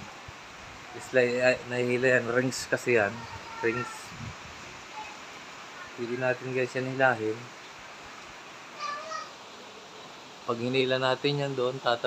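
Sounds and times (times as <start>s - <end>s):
hiss of rain and wind: 0.0s - 12.0s.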